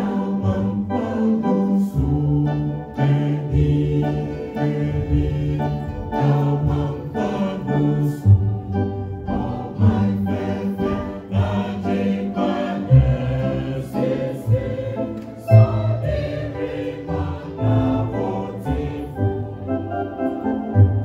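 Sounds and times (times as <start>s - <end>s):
choir singing a hymn: 0.0s - 21.0s
electronic keyboard organ chords: 0.0s - 21.0s.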